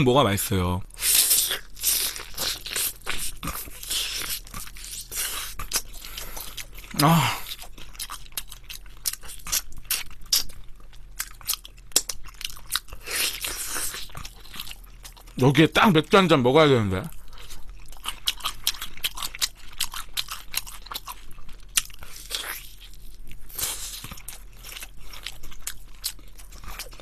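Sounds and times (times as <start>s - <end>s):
crunching and chewing fried chicken: 0.6s - 27.0s
person vocal sound: 6.9s - 7.5s.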